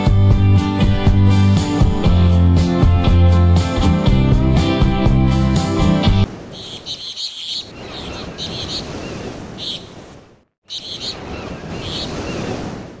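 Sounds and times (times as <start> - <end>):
water: 6.1 - 13.0.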